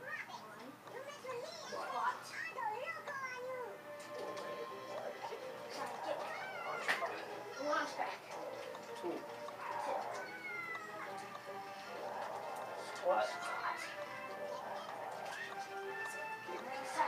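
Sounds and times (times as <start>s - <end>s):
background music: 0.8s - 17.0s
child squealing: 10.2s - 11.1s.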